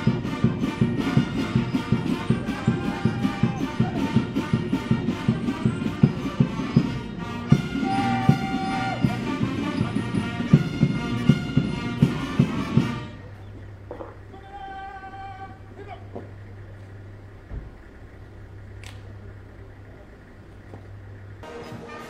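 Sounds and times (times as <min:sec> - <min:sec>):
regular drum beat: 0:00.0 - 0:13.1
brass notes: 0:00.0 - 0:16.0, 0:21.4 - 0:22.0.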